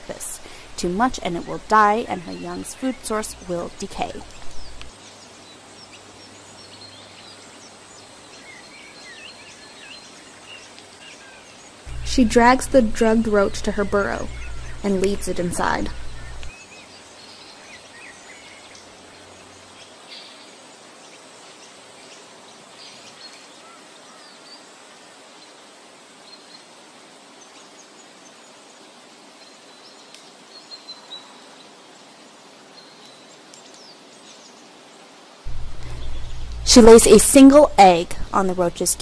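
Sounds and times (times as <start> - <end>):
steady low hiss: 0.0 - 39.0
distant bird chirps: 0.4 - 4.9, 11.9 - 16.6, 35.5 - 39.0.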